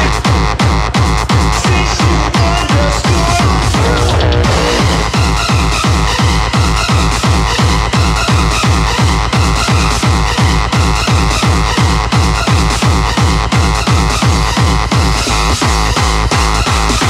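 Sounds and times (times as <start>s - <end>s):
fast kick drum: 0.0s - 17.0s
electronic synth layers: 1.7s - 5.8s.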